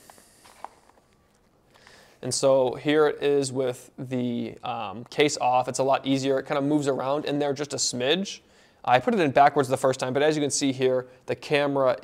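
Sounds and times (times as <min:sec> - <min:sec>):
handling noise: 0:00.0 - 0:01.7.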